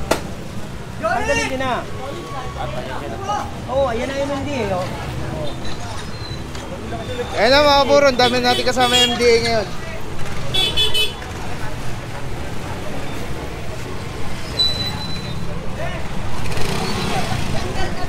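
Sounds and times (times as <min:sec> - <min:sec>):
street noise: 0:00.0 - 0:18.0.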